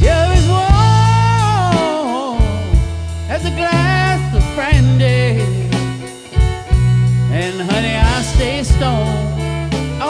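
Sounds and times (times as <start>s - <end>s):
man singing: 0.0s - 6.3s, 7.2s - 10.0s
drum kit: 0.0s - 10.0s
electric bass: 0.0s - 10.0s.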